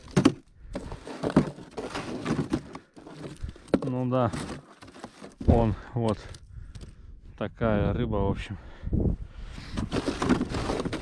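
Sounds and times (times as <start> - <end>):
frozen fish clattering on plastic: 0.0 - 5.4.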